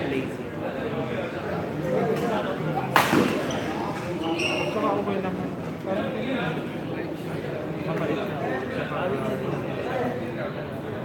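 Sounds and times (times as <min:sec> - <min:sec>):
spectators chatting: 0:00.0 - 0:11.0.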